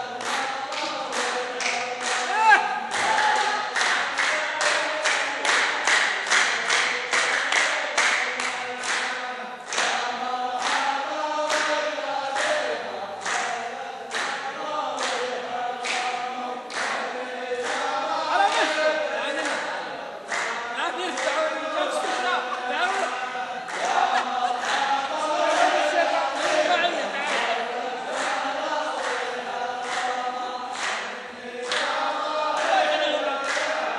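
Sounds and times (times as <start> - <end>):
men singing in unison: 0.0 - 33.9
unison handclaps: 0.0 - 33.9.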